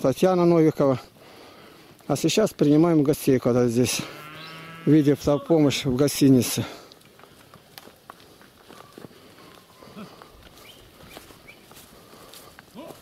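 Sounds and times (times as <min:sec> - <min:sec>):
hooves on dirt road: 0:00.0 - 0:13.0
low animal call: 0:04.0 - 0:05.5, 0:08.7 - 0:10.3.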